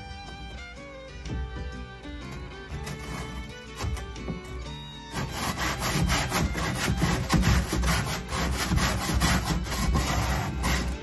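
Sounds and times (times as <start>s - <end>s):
hand saw rasping: 1.3s - 11.0s.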